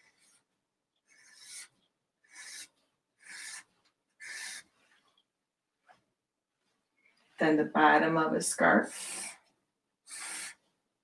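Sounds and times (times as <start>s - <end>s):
felt-tip marker on canvas: 1.1s - 4.7s, 8.8s - 9.5s.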